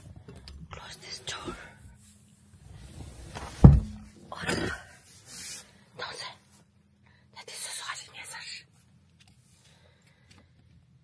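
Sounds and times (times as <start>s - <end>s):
woman whispering: 0.7s - 1.8s, 6.0s - 6.6s, 7.3s - 8.7s.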